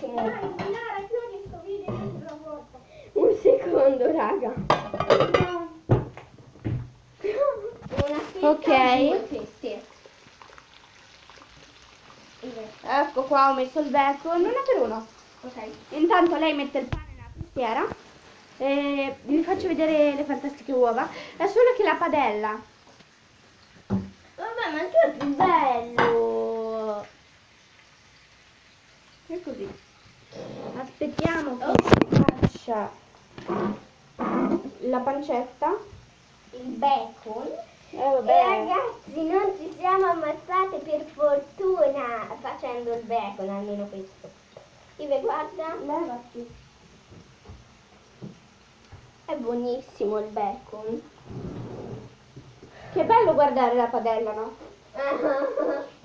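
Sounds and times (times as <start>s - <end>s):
girls talking: 0.0s - 5.9s, 7.2s - 9.9s, 12.4s - 18.0s, 18.6s - 22.7s, 24.4s - 27.1s, 30.8s - 33.0s, 36.5s - 44.1s, 45.0s - 46.6s, 52.9s - 56.0s
bacon sizzling in a pan: 0.0s - 56.0s.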